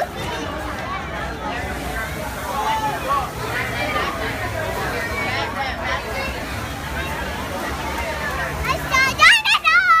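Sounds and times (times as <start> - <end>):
children's voices babbling: 5.0 - 10.0.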